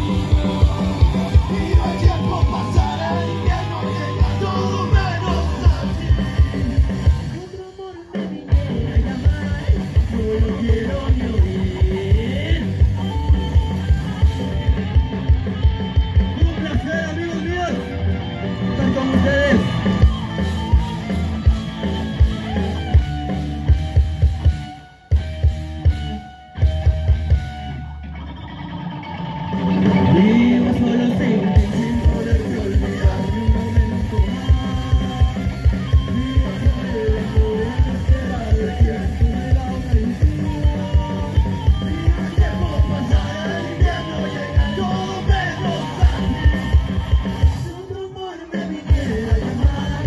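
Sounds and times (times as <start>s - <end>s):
person singing: 0.0s - 15.3s, 29.6s - 50.0s
drum kit: 0.0s - 28.3s, 29.4s - 48.0s, 48.6s - 50.0s
electric guitars and bass: 0.0s - 50.0s.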